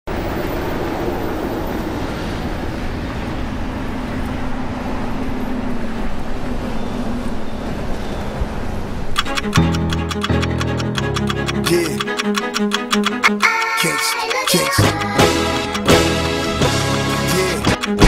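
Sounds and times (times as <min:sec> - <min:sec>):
street traffic rumble: 0:00.1 - 0:13.2
hip-hop beat: 0:09.2 - 0:18.0
plucked guitar notes: 0:09.2 - 0:18.0.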